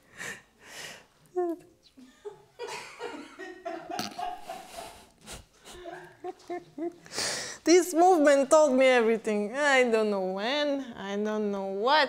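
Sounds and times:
woman laughing: 0:01.4 - 0:07.1.

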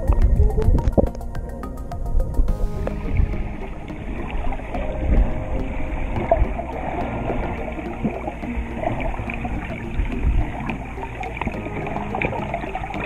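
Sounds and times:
held music notes: 0:00.0 - 0:13.0
muffled underwater wash: 0:00.0 - 0:13.0
underwater gurgles: 0:00.0 - 0:13.0.

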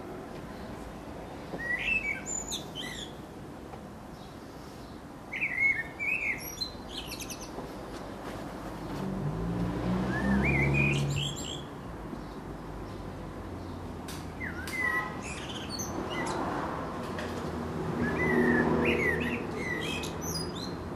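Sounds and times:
blackbird singing: 0:01.4 - 0:03.2, 0:04.1 - 0:07.6, 0:10.1 - 0:13.0, 0:14.4 - 0:16.4, 0:18.0 - 0:20.9.

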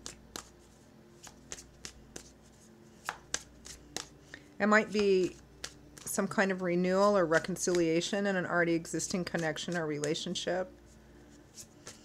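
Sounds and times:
cards shuffled by hand: 0:00.0 - 0:04.2, 0:04.8 - 0:06.2, 0:07.0 - 0:08.0, 0:09.0 - 0:10.4, 0:11.3 - 0:12.0.

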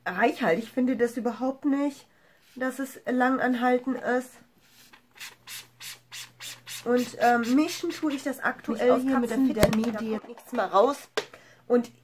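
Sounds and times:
scratchy rubbing of makeup: 0:02.4 - 0:03.0, 0:03.9 - 0:09.3.

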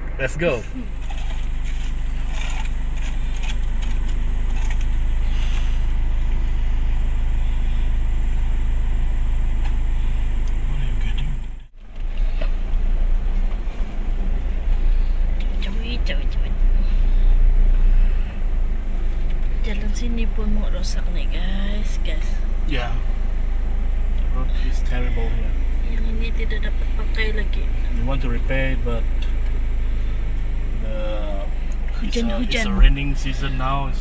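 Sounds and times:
vehicle engine and tyre rumble: 0:00.0 - 0:34.0.

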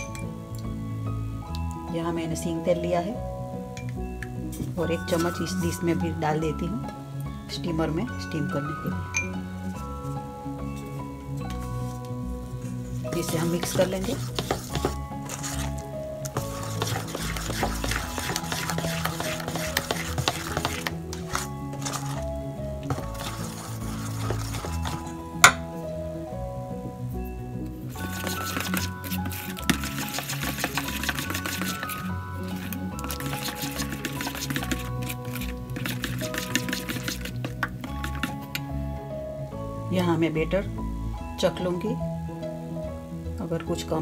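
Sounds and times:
background music: 0:00.0 - 0:44.0
spoon stirring batter in metal bowl: 0:10.1 - 0:25.7, 0:27.9 - 0:38.7.

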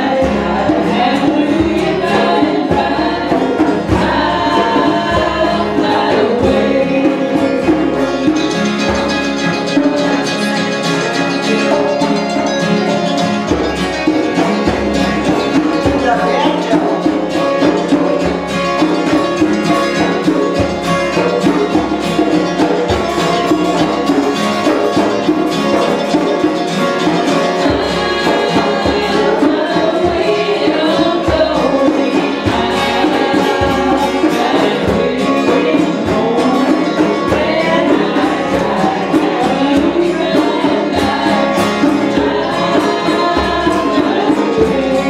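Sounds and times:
guitar strumming: 0:00.0 - 0:45.0
voices singing along: 0:00.0 - 0:45.0.

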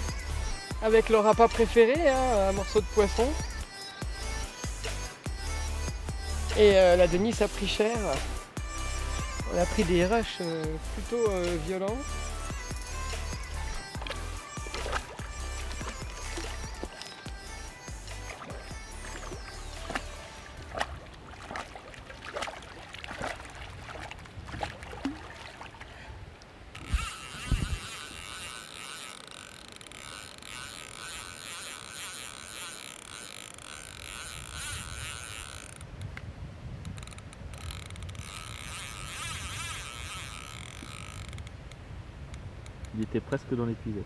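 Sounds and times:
fishing reel drag ticking: 0:00.0 - 0:21.2, 0:26.4 - 0:43.1
fish splashing at the surface: 0:14.0 - 0:17.4, 0:18.1 - 0:26.0.

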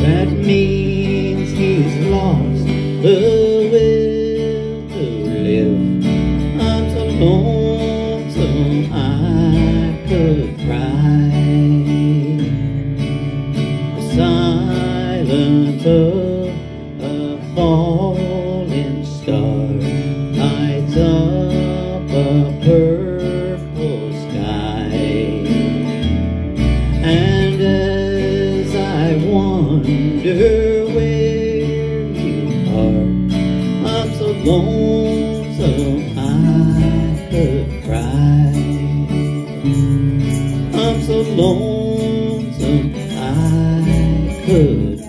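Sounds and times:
bass guitar: 0:00.0 - 0:45.0
strummed acoustic guitar: 0:00.0 - 0:45.0
wavering lead melody: 0:20.1 - 0:45.0.

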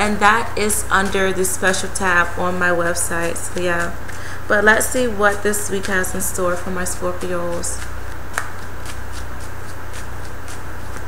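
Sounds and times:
cards being shuffled: 0:07.5 - 0:11.0.

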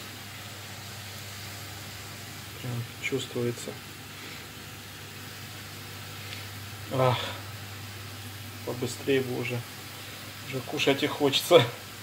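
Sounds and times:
potato sticks sizzling in oil: 0:00.0 - 0:12.0.

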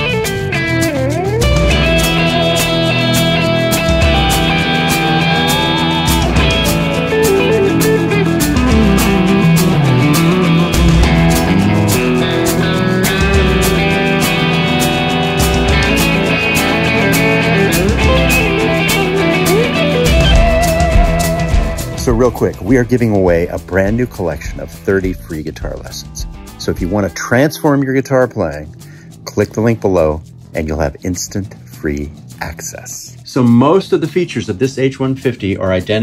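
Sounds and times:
electric guitar blues rock riff: 0:00.0 - 0:27.0
steady beat: 0:00.0 - 0:29.2.

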